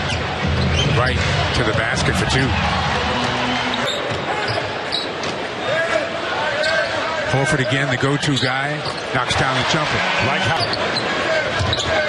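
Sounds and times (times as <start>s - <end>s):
crowd hubbub: 0.0s - 12.0s.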